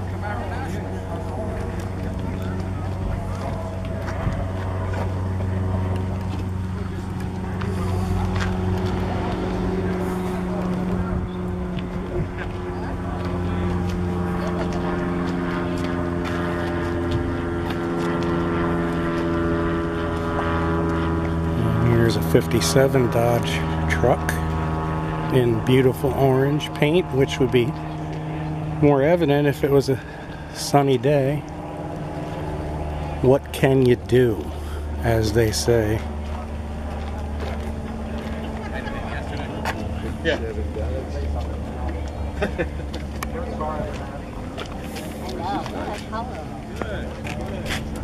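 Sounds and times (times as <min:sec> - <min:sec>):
people chatting: 0:00.0 - 0:15.8, 0:21.5 - 0:24.5, 0:25.2 - 0:27.8, 0:28.8 - 0:31.4, 0:33.1 - 0:36.1, 0:38.1 - 0:47.8
engine running steadily: 0:00.0 - 0:48.0
steady low rumble: 0:00.0 - 0:48.0.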